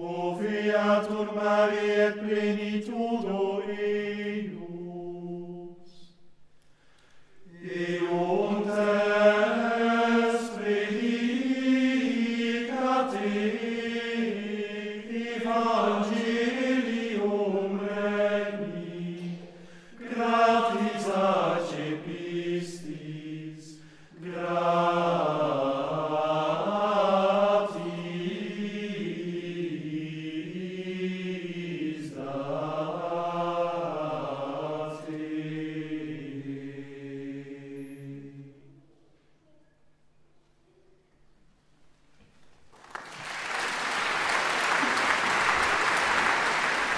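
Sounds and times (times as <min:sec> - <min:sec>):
men's choir chanting in unison: 0:00.0 - 0:06.0, 0:07.4 - 0:38.6.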